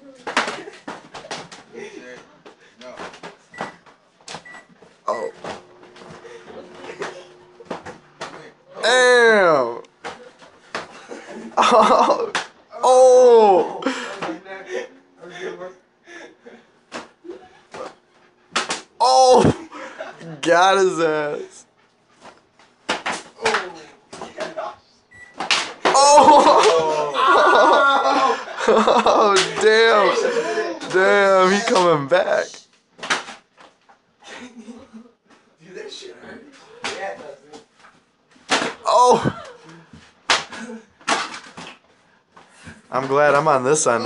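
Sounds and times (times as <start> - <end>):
person shouting: 8.8 - 9.8, 12.7 - 13.8, 19.0 - 19.6, 25.9 - 28.4, 38.8 - 39.5.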